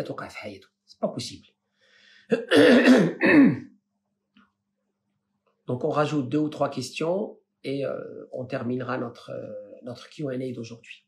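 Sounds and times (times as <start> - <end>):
man clearing his throat: 2.3 - 3.7.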